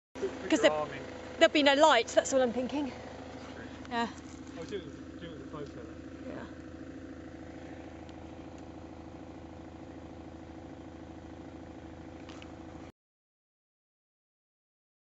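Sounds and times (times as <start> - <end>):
engine idling: 0.2 - 12.9.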